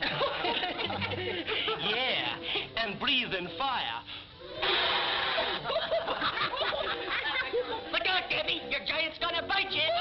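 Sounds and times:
cartoon men laughing: 0:00.0 - 0:02.0, 0:04.6 - 0:07.9.

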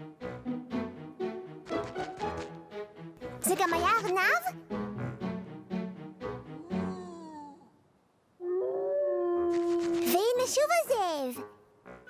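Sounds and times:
music: 0:00.0 - 0:07.3, 0:11.2 - 0:12.0
cartoon voice howling like a wolf: 0:08.4 - 0:10.1.

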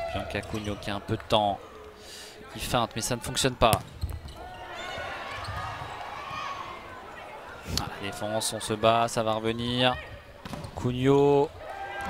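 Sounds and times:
crowd voices in a large hall: 0:00.0 - 0:12.0
volleyball thudding: 0:03.7 - 0:04.4.

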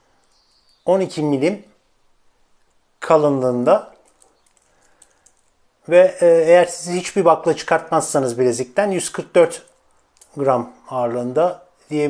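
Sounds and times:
man talking: 0:00.9 - 0:01.7, 0:03.0 - 0:04.0, 0:05.8 - 0:09.7, 0:10.3 - 0:12.0.

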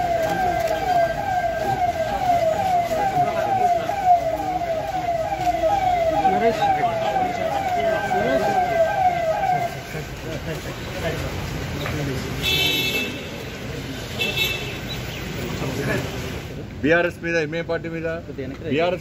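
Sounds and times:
siren fast falling wail: 0:00.0 - 0:09.8
crowd chatter: 0:00.0 - 0:16.6.

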